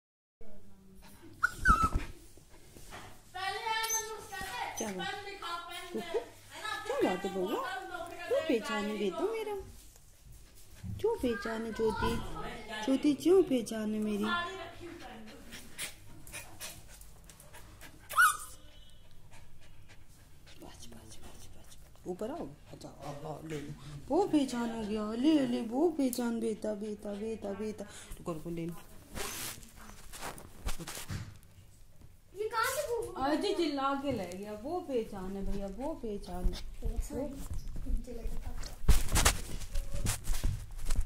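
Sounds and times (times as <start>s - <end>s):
small dog whining: 1.4s - 2.1s, 3.8s - 4.2s, 18.1s - 18.6s
small dog panting: 3.8s - 6.0s, 14.7s - 23.8s, 26.3s - 28.2s, 35.2s - 38.8s.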